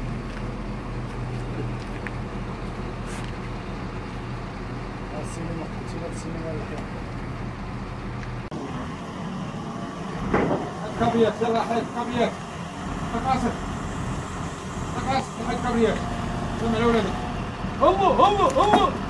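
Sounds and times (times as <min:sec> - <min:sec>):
diesel engine running: 0:00.0 - 0:19.0
men calling out: 0:14.9 - 0:19.0.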